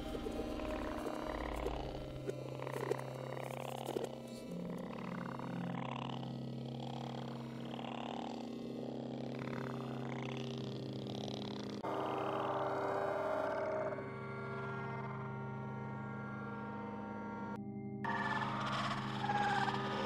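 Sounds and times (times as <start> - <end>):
steady low drone: 0.0 - 20.0.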